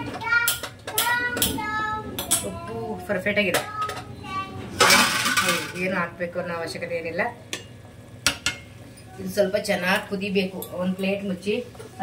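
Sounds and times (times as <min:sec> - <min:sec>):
child talking: 0:00.0 - 0:04.9.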